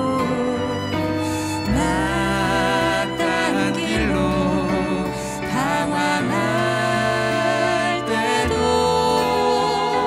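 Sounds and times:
live band with violin: 0.0 - 10.0
man and woman singing: 0.0 - 10.0.

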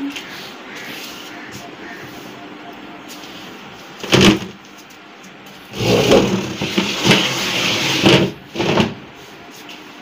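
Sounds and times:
plastic chair scraping floor: 4.0 - 4.6, 5.7 - 9.0.

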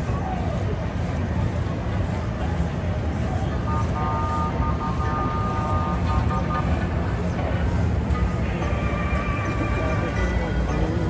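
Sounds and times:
crowd voices: 0.0 - 11.0
low vehicle rumble: 0.0 - 11.0.

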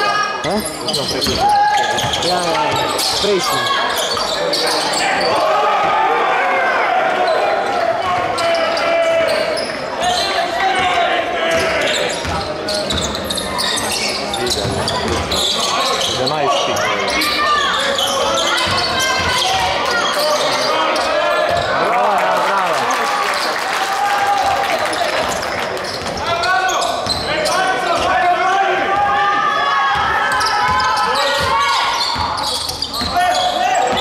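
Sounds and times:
murmur of voices echoing: 0.0 - 34.0.

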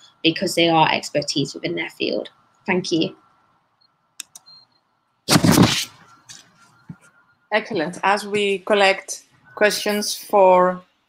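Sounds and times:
computer mouse clicks: 3.8 - 4.7.

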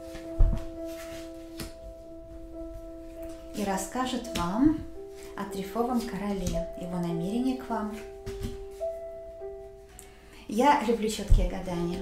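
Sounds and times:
soft music of sustained tones: 0.0 - 12.0.

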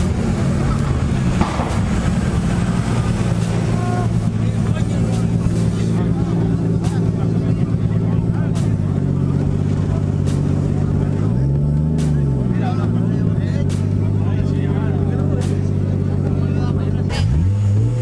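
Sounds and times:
car engine idling and revving: 0.0 - 18.0
people talking: 0.0 - 18.0.

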